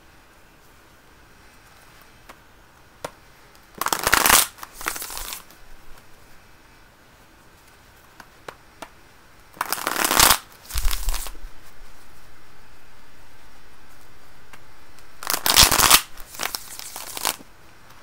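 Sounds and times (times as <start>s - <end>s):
cards being shuffled: 3.8s - 6.1s, 9.6s - 12.0s, 15.2s - 18.0s.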